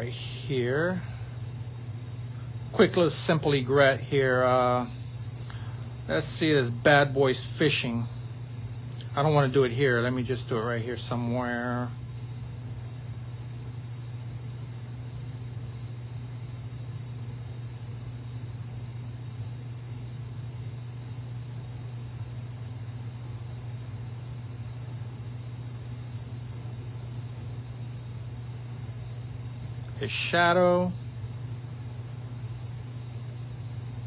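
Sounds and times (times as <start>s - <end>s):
faint hiss: 0.0s - 34.0s
low electrical hum: 0.0s - 34.0s.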